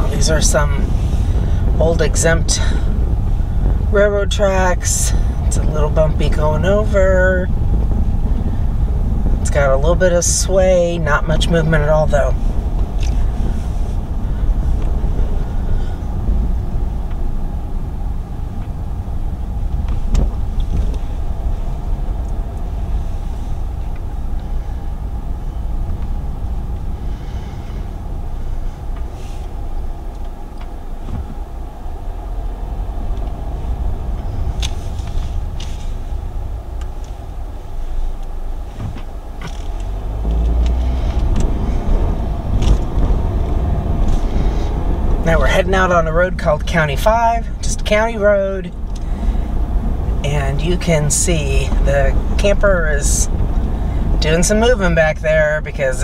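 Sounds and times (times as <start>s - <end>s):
road and engine rumble: 0.0s - 56.0s.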